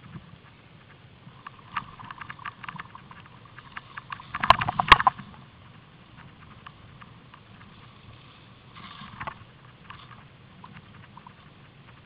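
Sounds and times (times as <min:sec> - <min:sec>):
small squeaks and clicks: 0:00.0 - 0:12.0.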